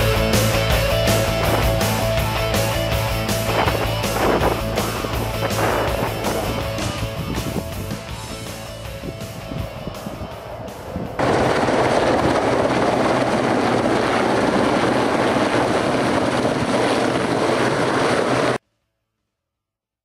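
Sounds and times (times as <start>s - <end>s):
background music: 0.0s - 12.1s
helicopter running: 0.0s - 18.6s.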